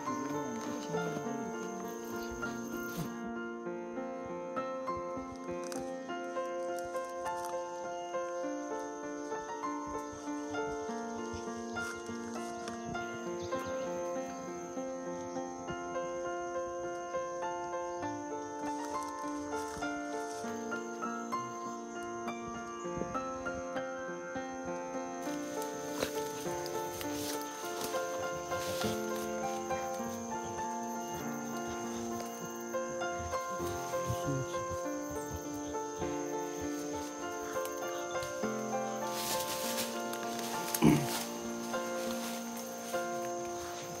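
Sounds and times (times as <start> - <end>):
high-pitched insect drone: 0.0 - 44.0
music of slow held chords: 0.0 - 44.0.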